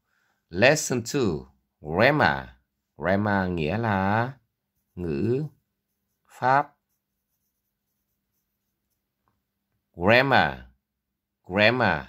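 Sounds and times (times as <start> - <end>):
pen scratching on paper: 4.7 - 9.2.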